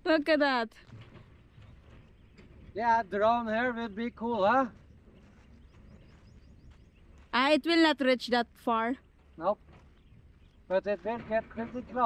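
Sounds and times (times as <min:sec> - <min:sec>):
distant bird chirping: 0:00.0 - 0:12.0.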